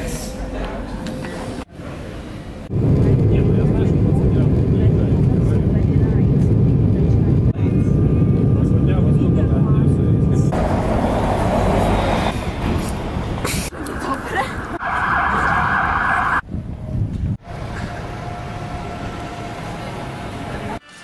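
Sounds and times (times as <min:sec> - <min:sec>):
city street noise: 0:00.0 - 0:21.0
jet engine cabin rumble: 0:02.7 - 0:10.9.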